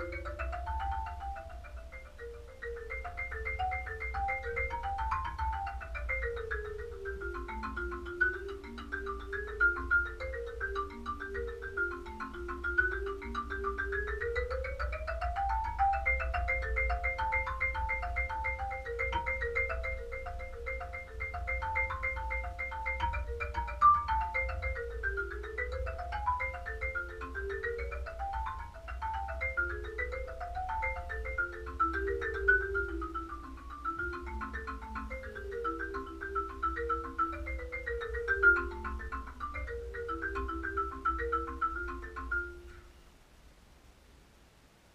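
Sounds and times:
wooden mallet keyboard playing: 0.0 - 42.9.

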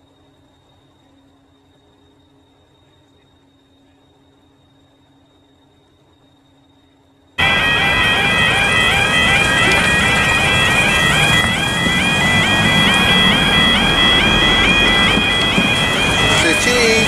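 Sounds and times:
two-tone warning alarm: 7.4 - 17.0
vehicle engines running: 7.4 - 17.0.

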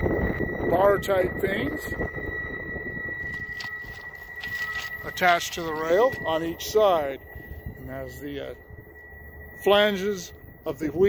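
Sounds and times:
faint high-pitched whine: 0.0 - 11.0
wind rumble on microphone: 0.0 - 11.0.

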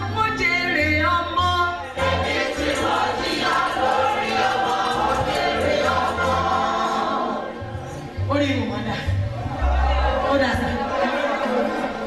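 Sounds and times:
group of voices singing: 1.8 - 8.2.

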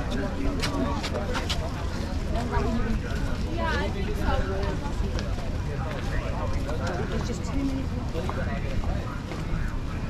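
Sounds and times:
chatter of pedestrians: 0.0 - 10.0.

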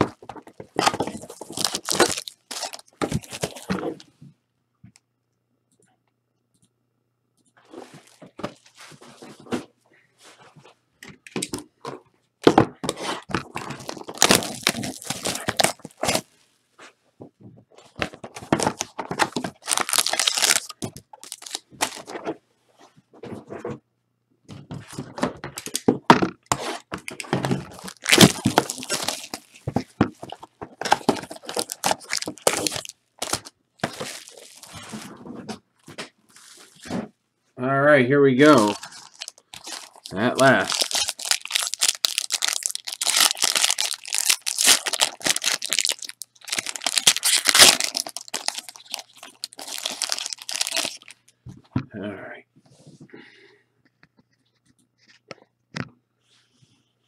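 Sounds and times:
foil wrapping crinkling and tearing: 0.0 - 3.7, 13.0 - 16.3, 18.5 - 22.1, 26.6 - 35.1, 38.5 - 51.3.

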